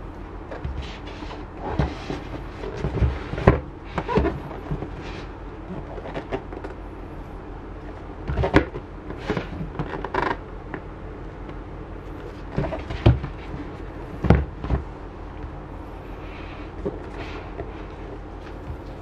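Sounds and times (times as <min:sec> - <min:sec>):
steady low hum: 0:00.0 - 0:19.0
cardboard boxes knocking and creaking: 0:00.5 - 0:06.7, 0:08.2 - 0:10.4, 0:12.2 - 0:14.9.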